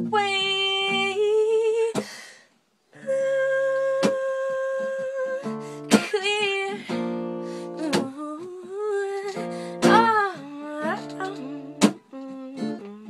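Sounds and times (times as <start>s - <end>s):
acoustic guitar chords: 3.6s - 13.0s.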